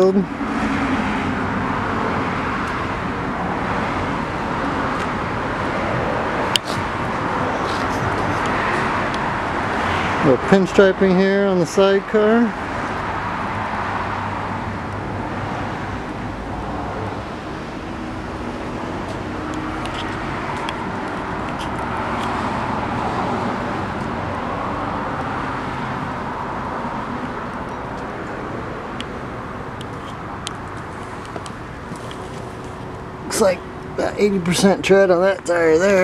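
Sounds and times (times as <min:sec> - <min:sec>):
road traffic noise: 0:00.0 - 0:36.0.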